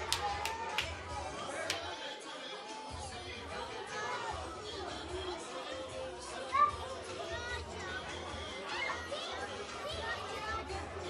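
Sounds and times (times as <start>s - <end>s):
chatter of many voices: 0.0s - 11.0s.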